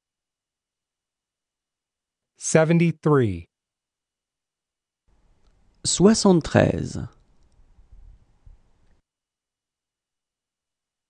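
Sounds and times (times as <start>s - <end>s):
spoken word: 5.9s - 7.2s
faint soft clicks: 7.2s - 9.0s.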